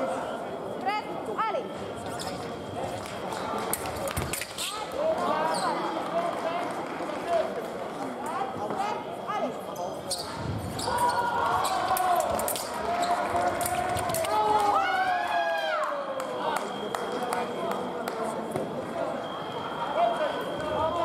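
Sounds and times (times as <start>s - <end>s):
voices in a hall: 0.0s - 21.0s.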